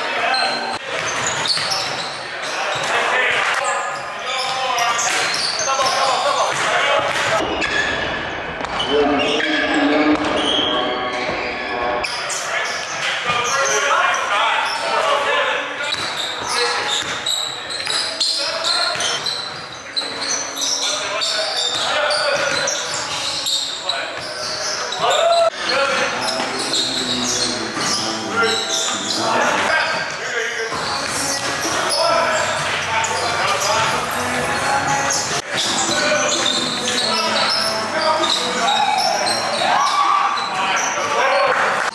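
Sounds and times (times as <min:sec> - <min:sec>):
sneakers squeaking: 0:00.0 - 0:41.6
indistinct player voices: 0:25.4 - 0:29.7.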